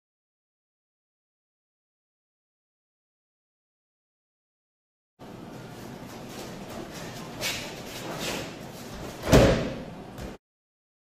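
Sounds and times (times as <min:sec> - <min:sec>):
body thudding onto mat: 0:09.0 - 0:09.8.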